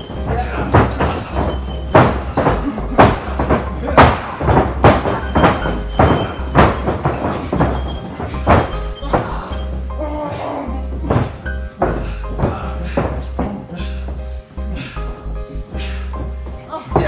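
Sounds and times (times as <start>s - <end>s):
music with heavy slow beat: 0.0s - 16.7s.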